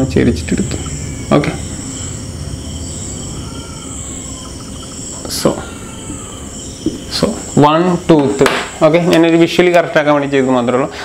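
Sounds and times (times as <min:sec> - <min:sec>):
high-pitched whining drone: 0:00.0 - 0:11.0.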